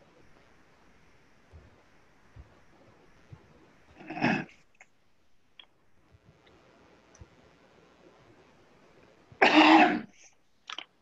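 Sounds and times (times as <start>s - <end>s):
person coughing: 9.4s - 10.2s.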